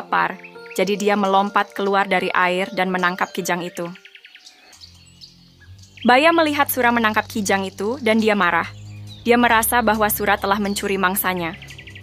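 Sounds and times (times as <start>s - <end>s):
faint bird chirps: 2.4s - 12.0s.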